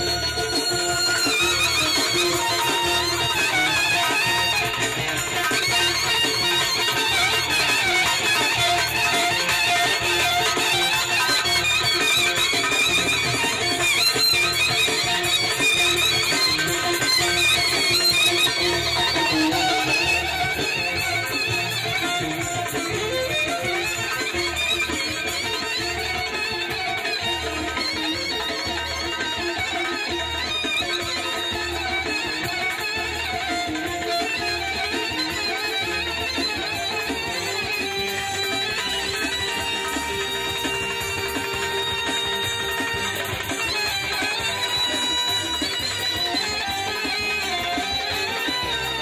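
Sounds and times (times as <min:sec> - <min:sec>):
folk dance band with saxophone: 0:00.0 - 0:49.0.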